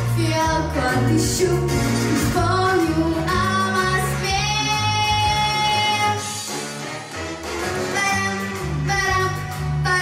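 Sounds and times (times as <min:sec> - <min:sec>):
girl singing into a microphone: 0:00.0 - 0:06.4, 0:08.0 - 0:10.0.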